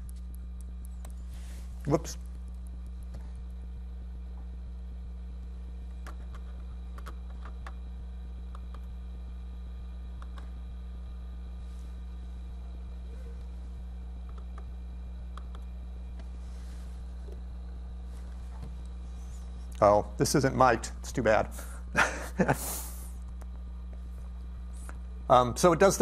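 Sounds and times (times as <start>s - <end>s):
low hum: 0.0s - 26.0s
faint clicks and taps: 10.1s - 10.5s, 14.2s - 16.3s.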